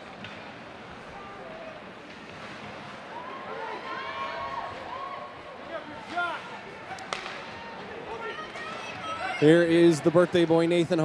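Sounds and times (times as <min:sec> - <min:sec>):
faint crowd voices: 0:00.0 - 0:11.0
hockey stick hitting puck: 0:07.1 - 0:07.5.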